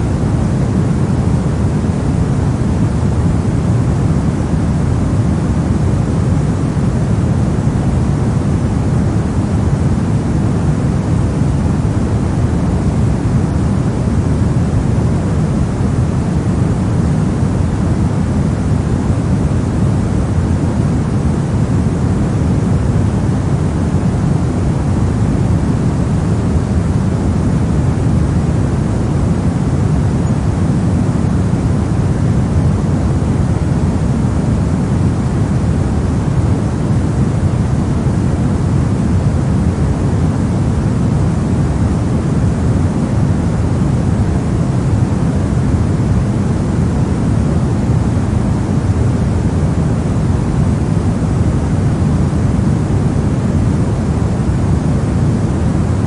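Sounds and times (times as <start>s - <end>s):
pink noise hiss: 0.0s - 56.0s.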